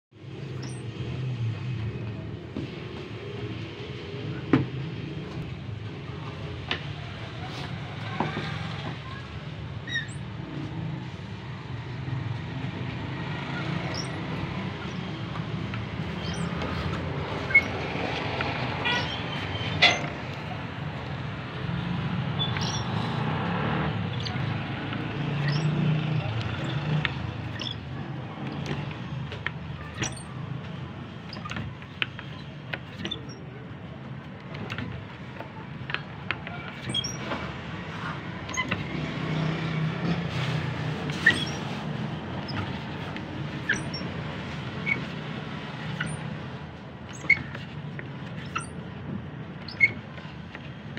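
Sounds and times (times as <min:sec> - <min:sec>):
high rising squeak: 0:00.4 - 0:01.1, 0:09.8 - 0:10.3, 0:13.5 - 0:20.2, 0:21.6 - 0:29.2, 0:36.6 - 0:37.4, 0:38.4 - 0:42.8, 0:43.6 - 0:44.1, 0:45.7 - 0:46.5, 0:47.1 - 0:47.7, 0:48.4 - 0:48.8, 0:49.7 - 0:50.1.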